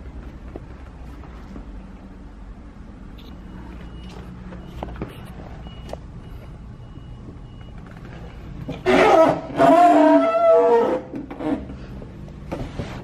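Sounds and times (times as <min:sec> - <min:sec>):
faint high-pitched beep: 0:03.1 - 0:08.8.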